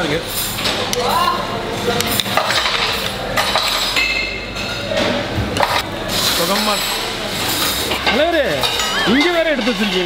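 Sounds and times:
busy room background noise: 0.0s - 10.0s
spoons clinking on plates: 2.0s - 10.0s.

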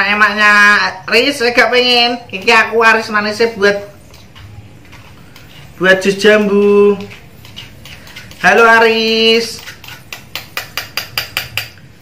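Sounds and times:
metal spoon tapping wire strainer: 6.5s - 11.8s.

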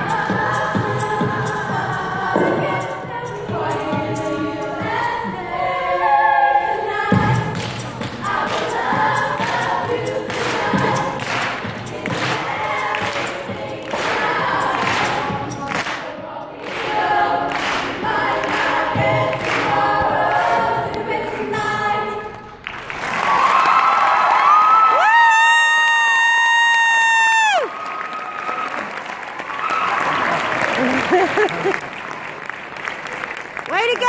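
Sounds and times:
show choir singing a cappella: 0.0s - 22.8s
audience cheering: 23.0s - 32.4s.

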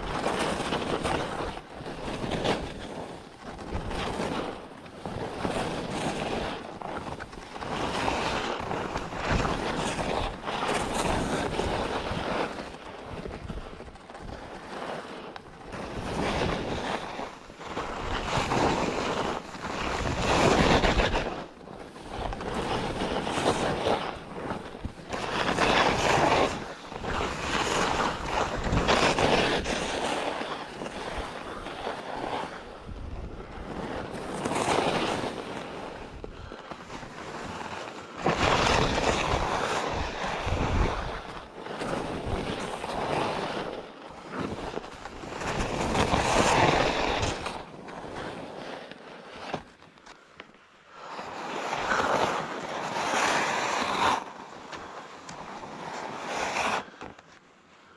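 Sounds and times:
wind on microphone: 0.0s - 48.6s
skis scraping over snow: 0.0s - 57.9s.

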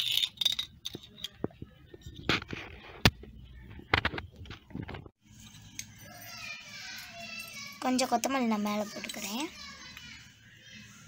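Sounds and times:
children's voices in background: 5.4s - 11.0s
child's voice close by: 6.1s - 11.0s.

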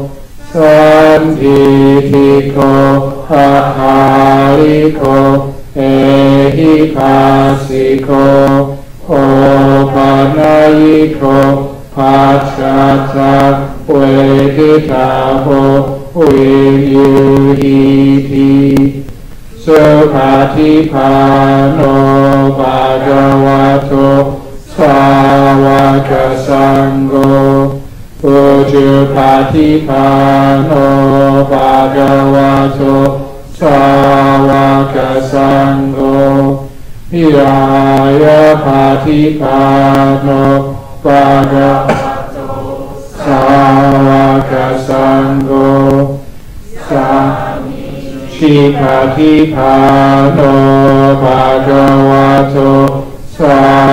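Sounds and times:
man chanting into a microphone: 0.0s - 53.9s.

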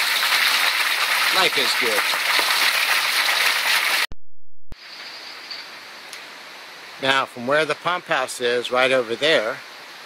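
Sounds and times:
water gushing onto rocks: 0.0s - 4.1s
quiet steady hiss: 4.8s - 10.0s.

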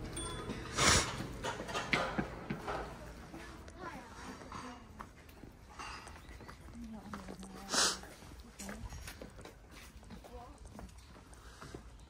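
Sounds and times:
people talking outdoors: 2.4s - 12.0s.

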